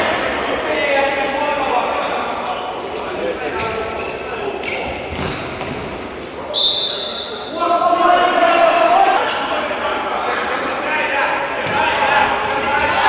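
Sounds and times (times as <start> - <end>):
voices in echoing hall: 0.0 - 13.0
referee's whistle: 6.5 - 7.6.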